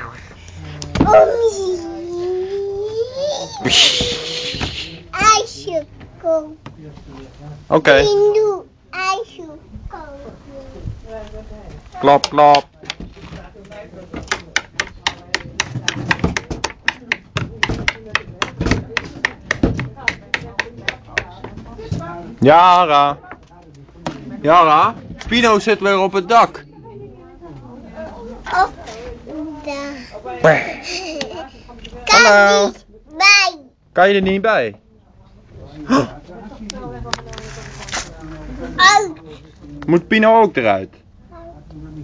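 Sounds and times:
toddler wordless vocal sound: 0:00.0 - 0:06.6, 0:28.4 - 0:30.3
short breathy hiss: 0:03.7 - 0:05.0
tapping on hollow plastic: 0:14.1 - 0:21.7.

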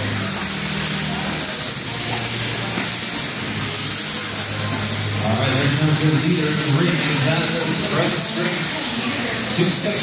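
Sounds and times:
steady high hiss: 0:00.0 - 0:10.0.

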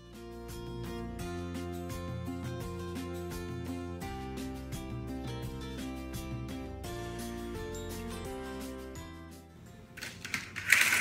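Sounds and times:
background music: 0:00.0 - 0:11.0
rustling and clattering: 0:10.0 - 0:11.0.

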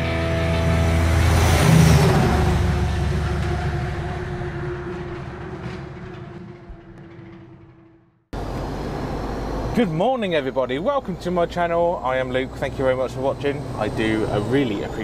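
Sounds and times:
loud soundtrack hit: 0:00.0 - 0:08.1.

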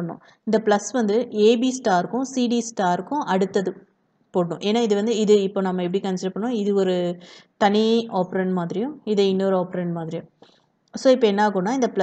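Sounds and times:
woman speaking: 0:00.0 - 0:03.8, 0:04.4 - 0:10.2, 0:11.0 - 0:12.0.

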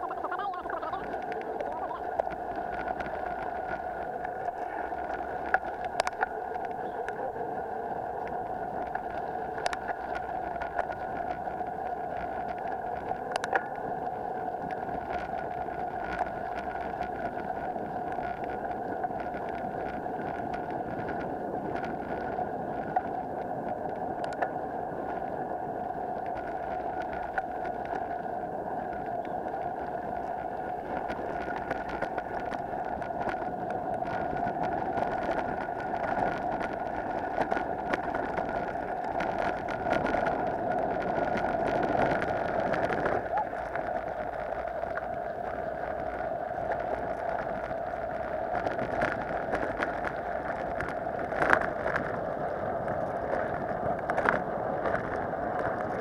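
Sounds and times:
bike tyres rolling rumble: 0:00.0 - 0:56.0.

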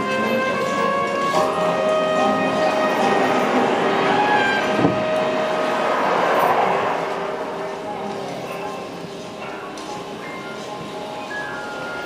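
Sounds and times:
city street traffic: 0:00.0 - 0:12.0
held musical notes: 0:00.0 - 0:12.0
car passing: 0:00.1 - 0:10.9.

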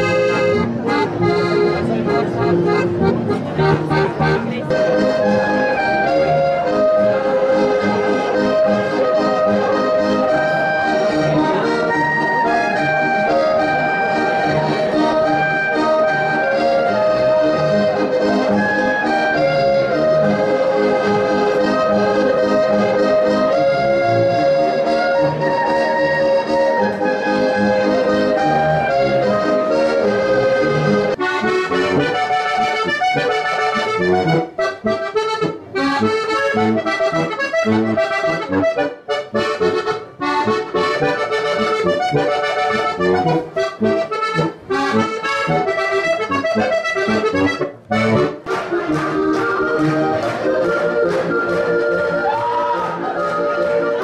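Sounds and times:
button accordion: 0:00.0 - 0:54.0
clarinet: 0:00.0 - 0:54.0.

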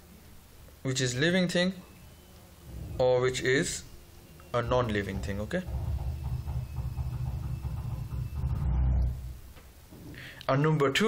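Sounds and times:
low rumble: 0:02.6 - 0:04.0, 0:04.6 - 0:09.4.

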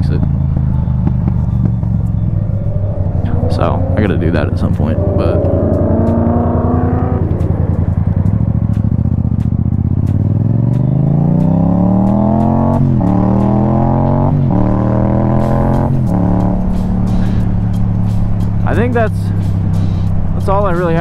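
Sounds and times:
motorcycle engine accelerating: 0:00.0 - 0:21.0.

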